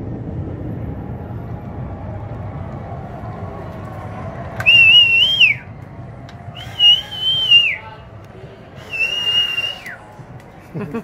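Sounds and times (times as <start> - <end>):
high whistles: 4.6 - 5.7, 6.5 - 8.0, 8.8 - 10.1.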